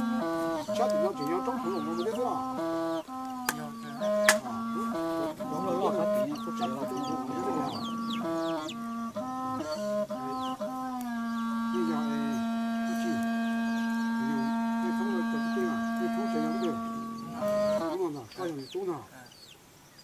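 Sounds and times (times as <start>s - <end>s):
reedy wind instrument tone: 0.0s - 18.6s
chicks peeping: 0.0s - 19.6s.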